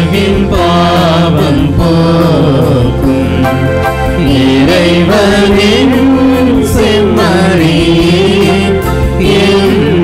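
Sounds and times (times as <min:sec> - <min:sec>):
hymn singing with accompaniment: 0:00.0 - 0:10.0.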